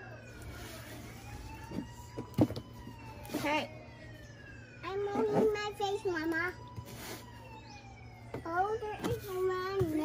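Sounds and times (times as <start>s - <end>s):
faint siren wailing: 0.0s - 10.0s.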